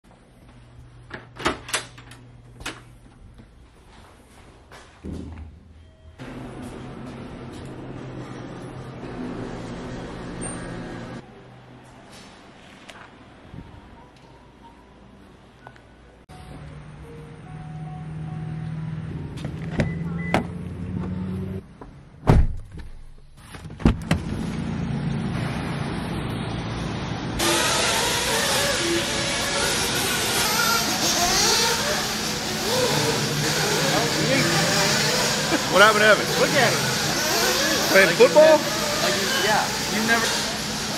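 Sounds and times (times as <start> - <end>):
constant mechanical hum: 0.1 - 18.4, 19.1 - 40.9.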